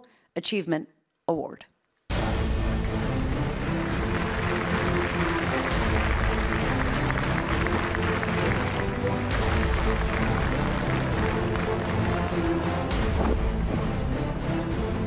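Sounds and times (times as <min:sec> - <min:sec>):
walk-on music: 0:02.2 - 0:15.0
audience applause: 0:02.3 - 0:13.0.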